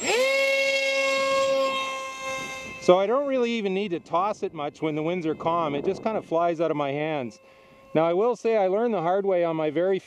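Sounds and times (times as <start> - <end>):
model plane motor whine: 0.0 - 10.0.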